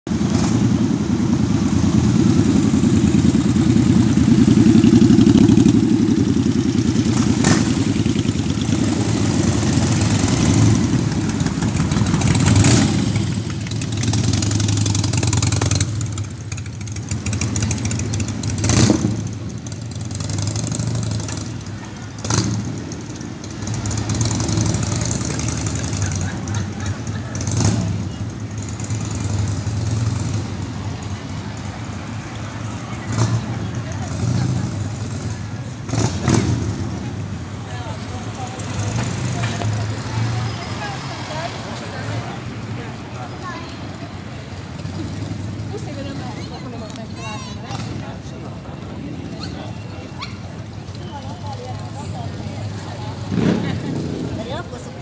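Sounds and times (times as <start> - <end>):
street noise: 0.0 - 55.0
motorcycle engines rumbling: 0.1 - 55.0.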